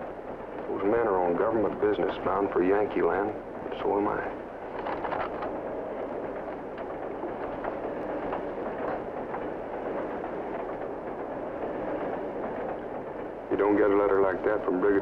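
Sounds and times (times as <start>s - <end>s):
train rumble: 0.0s - 15.0s
faint clicks: 4.7s - 11.2s.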